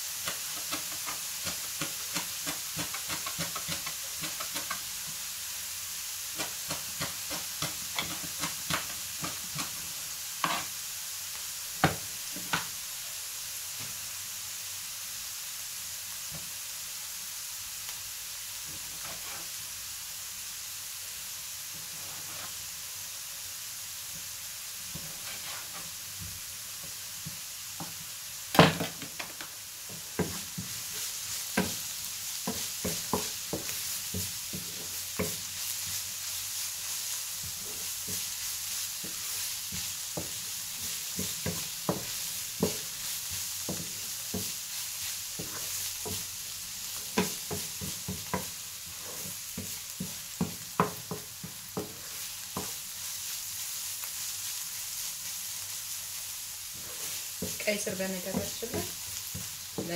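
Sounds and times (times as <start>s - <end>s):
beetroot sizzling in a frying pan: 0.0s - 59.9s
wooden spoon knocking on pan: 0.2s - 5.2s, 6.4s - 9.8s, 11.8s - 12.7s, 26.2s - 30.8s, 31.5s - 31.8s, 32.4s - 35.4s, 39.0s - 44.6s, 45.4s - 46.3s, 47.0s - 48.6s, 49.2s - 52.8s, 57.4s - 59.9s.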